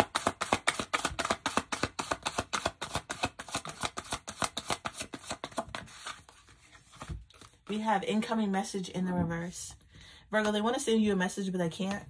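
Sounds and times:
cards being shuffled: 0.0s - 7.8s.

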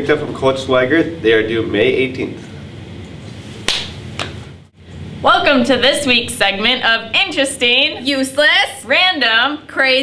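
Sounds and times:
faint room noise: 0.0s - 10.0s
sharp slap-like cracks: 3.6s - 4.4s.

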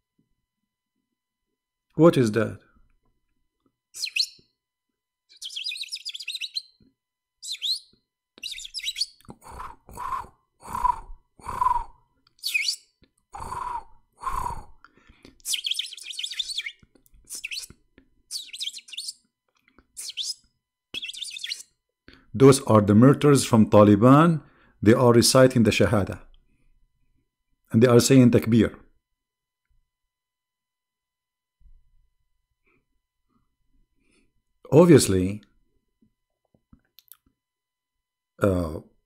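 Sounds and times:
birds chirping: 4.0s - 4.4s, 5.3s - 6.8s, 7.4s - 11.0s, 11.6s - 12.8s, 15.5s - 17.7s, 18.3s - 19.2s, 21.0s - 21.6s
harsh bird calls: 4.0s - 4.4s, 5.3s - 6.8s, 7.4s - 12.8s, 13.4s - 14.7s, 15.5s - 17.7s, 18.3s - 19.2s, 20.0s - 20.4s, 21.0s - 21.6s.

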